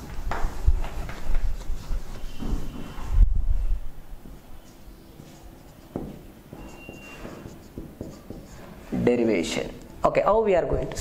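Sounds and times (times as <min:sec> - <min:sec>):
marker pen writing on whiteboard: 0:04.6 - 0:09.1.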